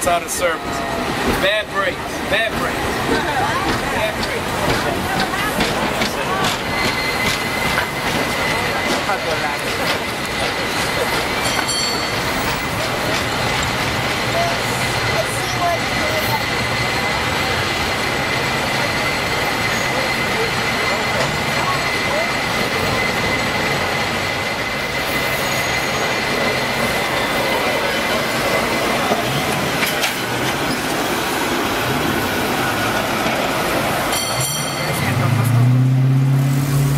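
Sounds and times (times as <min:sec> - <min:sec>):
cable car rumbling clatter: 0:00.7 - 0:24.6, 0:26.4 - 0:31.2, 0:31.9 - 0:36.9.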